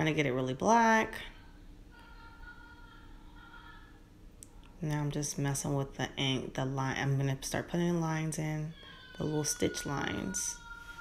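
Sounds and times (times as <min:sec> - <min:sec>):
low room hum: 0:00.0 - 0:11.0
soft background music: 0:00.0 - 0:11.0.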